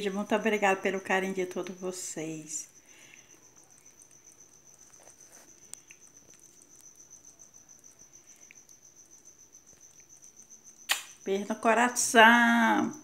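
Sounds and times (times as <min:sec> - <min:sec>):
high insect trill: 0:00.0 - 0:13.0.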